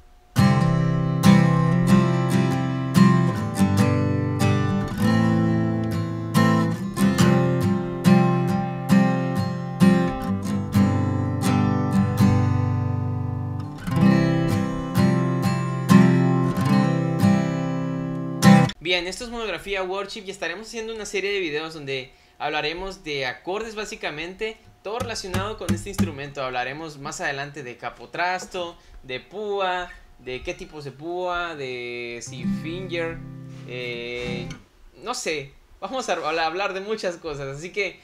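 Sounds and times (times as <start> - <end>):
acoustic guitar strumming: 0.0 - 18.8, 24.6 - 26.6, 32.0 - 34.7.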